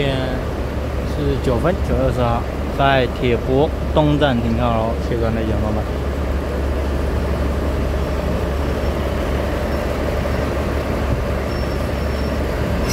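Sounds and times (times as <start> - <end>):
diesel railcar idling: 0.0 - 12.9.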